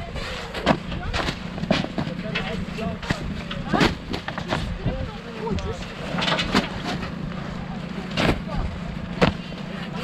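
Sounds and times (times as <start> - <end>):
tyres thudding on plastic: 0.6 - 4.7, 9.2 - 9.5.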